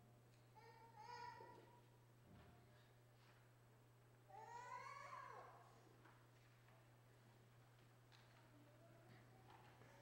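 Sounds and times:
child whining: 4.3s - 5.4s.

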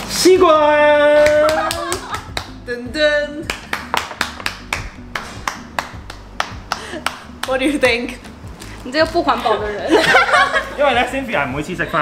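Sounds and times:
hands clapping: 1.2s - 2.6s, 3.4s - 7.8s.

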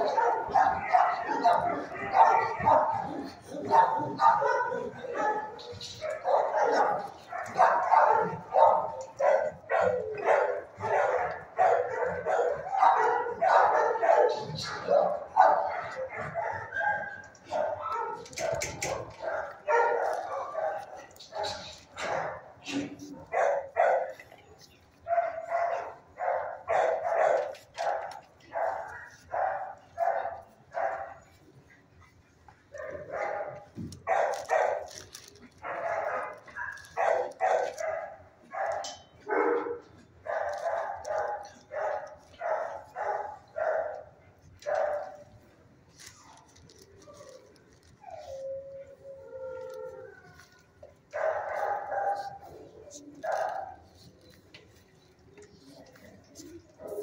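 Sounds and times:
dogs barking: 0.0s - 31.4s, 32.7s - 57.0s.

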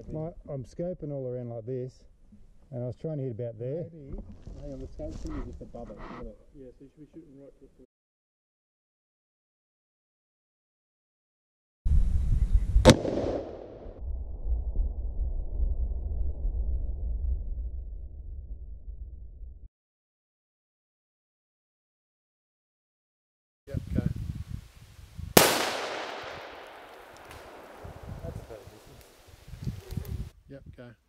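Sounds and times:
wind rumble on microphone: 11.9s - 12.9s, 13.9s - 19.7s, 23.7s - 25.4s, 27.4s - 31.0s
rifle shot: 12.8s - 14.0s, 25.4s - 29.2s.

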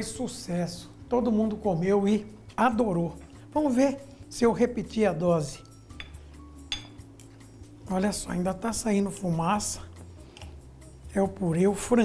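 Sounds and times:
faint background music: 0.0s - 12.0s
fork and knife clinking on plate: 5.6s - 7.4s.

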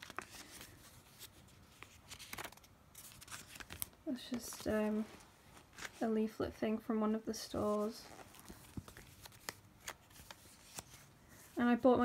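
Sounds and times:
paper pages turning: 0.0s - 6.0s, 7.7s - 11.6s.

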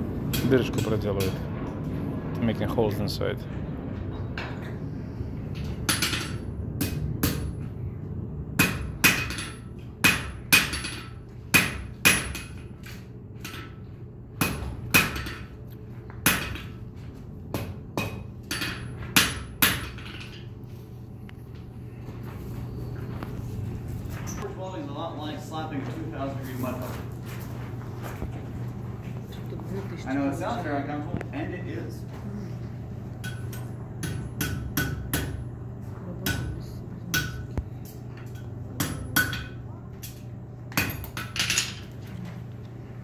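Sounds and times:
hammer striking steel on anvil: 5.8s - 7.6s, 8.6s - 12.7s, 14.4s - 15.5s, 16.2s - 16.8s, 17.5s - 20.3s, 33.2s - 35.5s, 36.2s - 37.5s, 38.2s - 39.6s.

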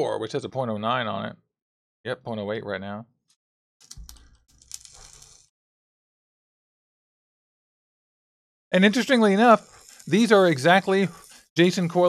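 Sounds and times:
coils crackling when dry-fired: 3.8s - 5.5s, 8.8s - 12.0s.

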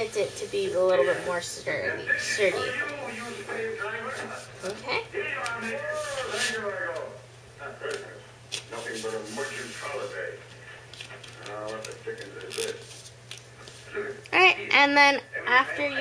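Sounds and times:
steady low hum: 0.0s - 16.0s
cardstock crinkling while folded: 10.9s - 13.8s.

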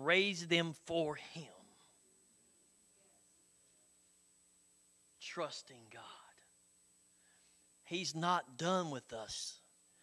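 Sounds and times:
man preaching: 0.0s - 1.8s, 5.2s - 6.4s, 7.9s - 9.6s
faint steady hum: 0.0s - 10.0s.

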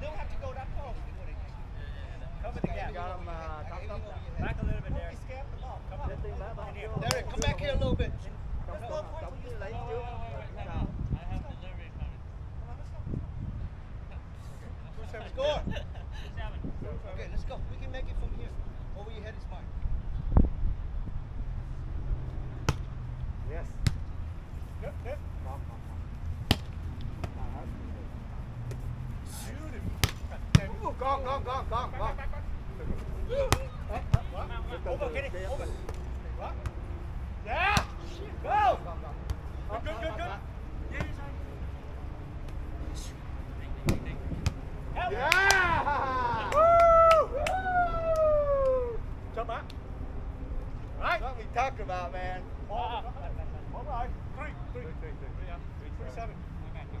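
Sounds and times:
low wind rumble: 0.0s - 57.0s
volleyball being hit: 26.4s - 27.5s, 30.0s - 30.8s
players shouting: 37.4s - 41.2s, 44.9s - 49.1s.

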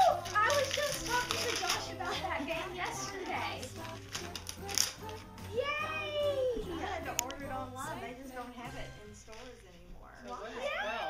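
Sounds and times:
wrapping paper rustling and tearing: 0.0s - 5.4s
indistinct talk: 0.0s - 11.0s.

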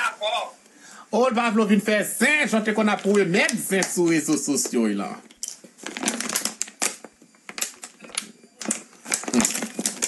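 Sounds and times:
plastic bottle crackling: 2.8s - 10.0s.

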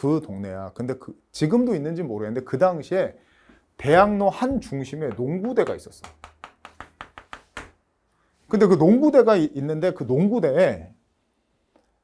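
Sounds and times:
chalk tapping on chalkboard: 4.4s - 7.8s.

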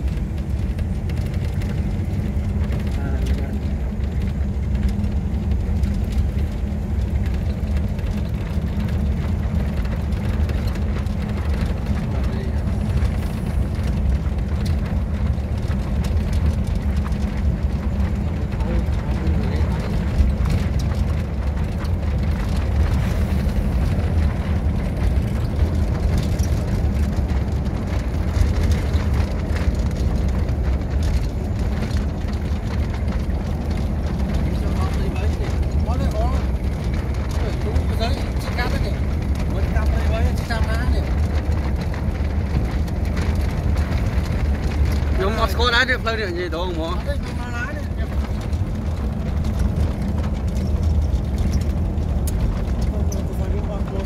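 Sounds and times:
moving vehicle rumble: 0.0s - 54.0s
wind buffeting microphone: 0.0s - 54.0s.

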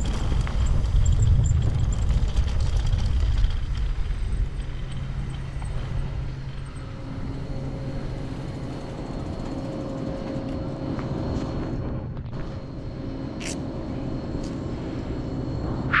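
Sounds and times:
bike tyres rumbling on dirt: 0.0s - 5.9s.

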